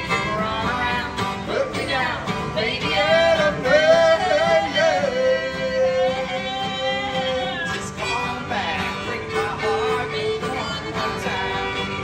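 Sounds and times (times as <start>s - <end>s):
fiddle and guitar playing: 0.0s - 12.0s
man singing: 0.0s - 12.0s.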